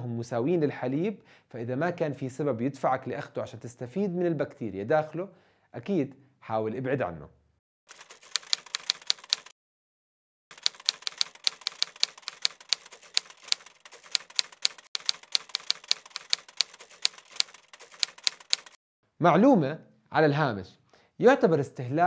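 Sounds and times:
typewriter key clicks: 10.5 - 18.8.

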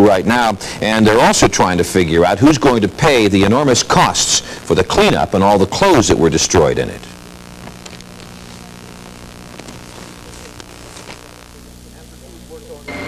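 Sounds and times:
low electrical hum: 0.0 - 13.0
tape hiss: 0.0 - 13.0
faint clicks: 7.6 - 8.3.

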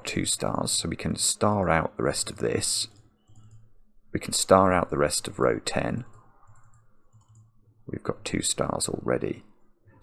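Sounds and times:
computer mouse and keyboard clicking: 2.9 - 3.6, 6.1 - 7.5.

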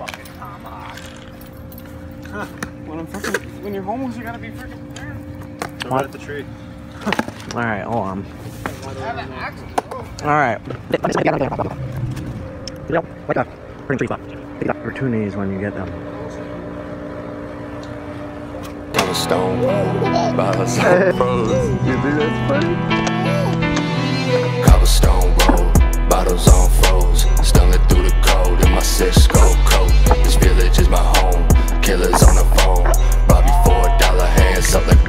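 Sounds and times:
keys jangling: 0.0 - 2.6
steady hum: 11.1 - 22.9.

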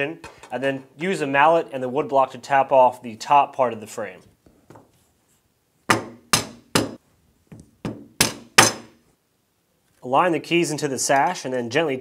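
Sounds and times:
mallet tapping wood block on metal: 5.9 - 7.0.

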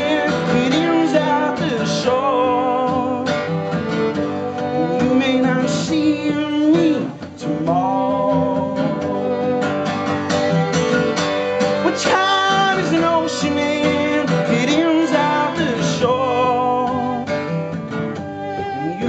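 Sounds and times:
fiddle melody: 0.0 - 19.0
strummed acoustic guitar: 0.0 - 19.0.

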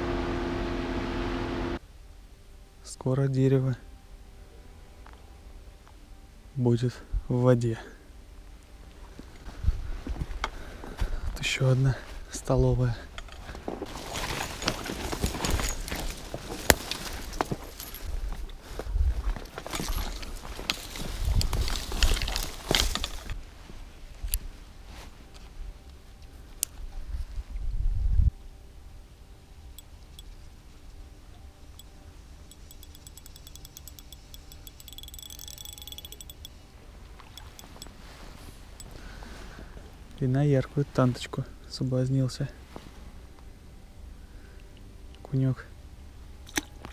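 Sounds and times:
twigs snapping and crackling: 13.8 - 17.8, 19.4 - 23.4
footsteps through dry leaves: 13.8 - 25.3
faint fast ticking: 32.5 - 36.6, 37.4 - 37.9.

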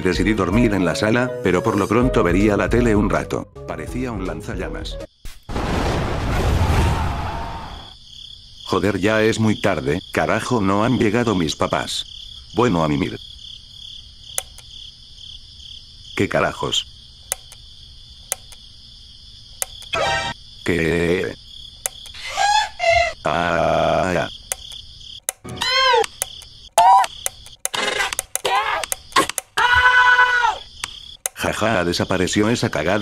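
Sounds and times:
crickets chirping: 4.1 - 33.0
sharp clicks: 14.3 - 14.7, 17.3 - 17.6, 18.3 - 18.6, 19.6 - 20.0, 21.8 - 22.2, 24.4 - 29.6, 30.8 - 31.4
cartoon voice high-pitched sung cries: 25.5 - 26.1.

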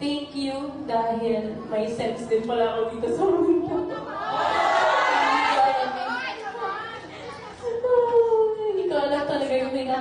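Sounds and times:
voices chattering: 2.9 - 8.9.

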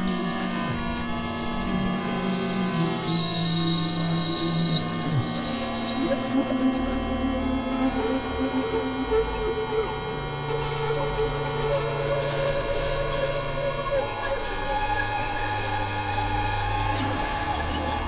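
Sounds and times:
synthesizer drones: 0.6 - 18.0.

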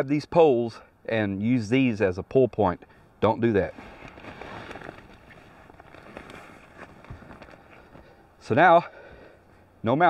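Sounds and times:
hammock fabric rustling and creaking: 3.5 - 8.6.

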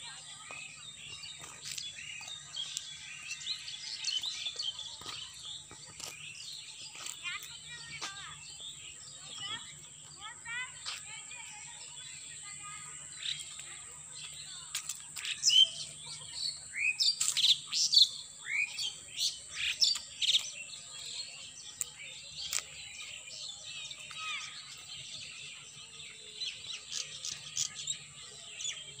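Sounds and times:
birds chirping: 0.0 - 29.0.

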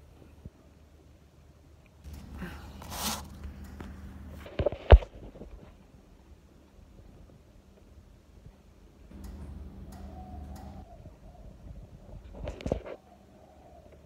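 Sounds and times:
fabric rustling against phone: 2.6 - 3.5.

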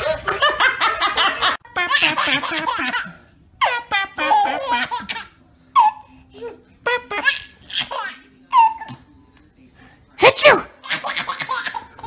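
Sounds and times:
baby laughing: 0.0 - 9.0, 10.8 - 12.0.

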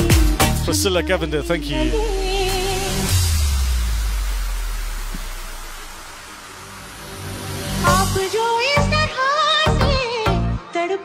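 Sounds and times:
music bass: 0.0 - 10.6
hiss-like noise: 2.6 - 9.5.

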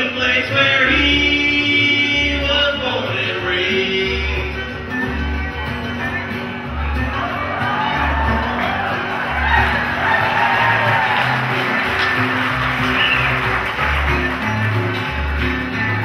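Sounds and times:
strummed acoustic guitar: 0.0 - 16.0.

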